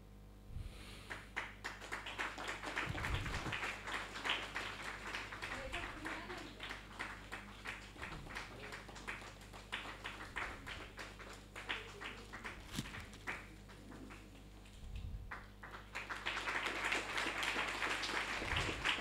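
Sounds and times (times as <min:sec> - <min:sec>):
audience applauding: 0:01.1 - 0:19.0.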